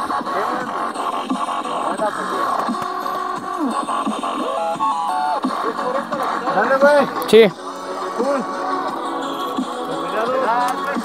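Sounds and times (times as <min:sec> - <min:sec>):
background music melody: 0:00.0 - 0:11.0.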